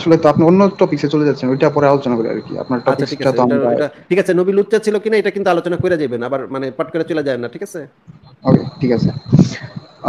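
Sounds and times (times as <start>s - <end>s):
man talking over online call: 0.0s - 9.8s
steady high-pitched tone: 0.0s - 10.0s.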